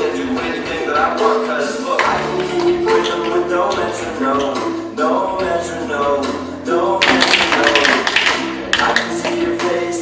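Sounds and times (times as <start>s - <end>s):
recorded music: 0.0s - 10.0s.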